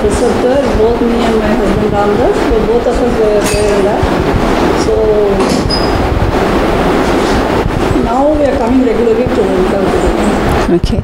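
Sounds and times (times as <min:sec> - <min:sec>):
loud low rumble: 0:00.0 - 0:11.0.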